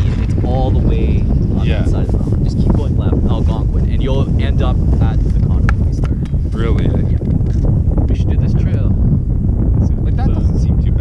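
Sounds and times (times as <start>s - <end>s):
man's voice: 0.0s - 7.3s, 8.0s - 9.0s, 9.8s - 11.0s
wind buffeting microphone: 0.0s - 11.0s.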